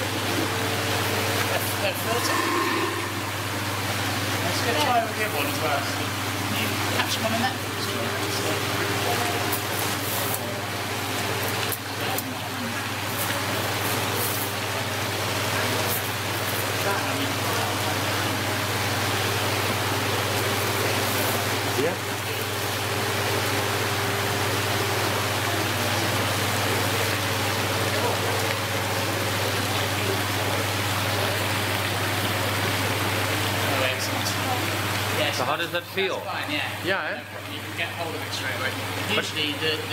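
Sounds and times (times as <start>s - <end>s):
low pump hum: 0.0s - 35.4s
water rushing into tank: 0.0s - 36.9s.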